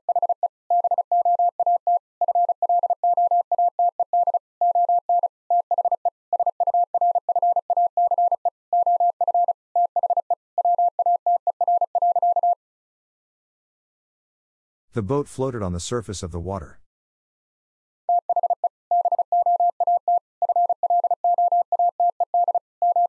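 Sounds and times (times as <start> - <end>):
morse code tone: 0.1 - 12.6, 18.1 - 23.0.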